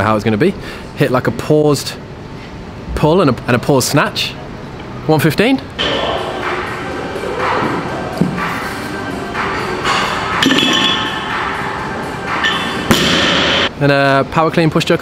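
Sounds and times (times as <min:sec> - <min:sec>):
background music: 0:05.8 - 0:13.7
sharp thud: 0:12.9 - 0:13.6.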